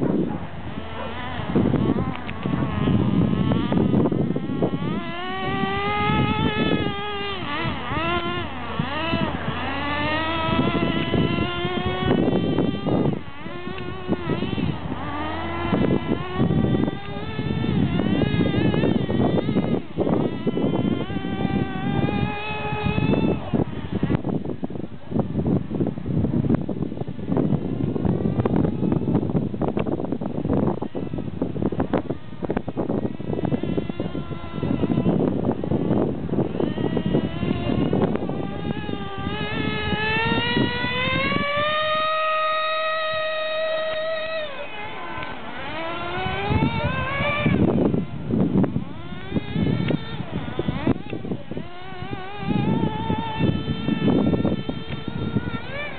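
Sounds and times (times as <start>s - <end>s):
toy car motor whining: 0.0s - 24.5s, 27.2s - 55.9s.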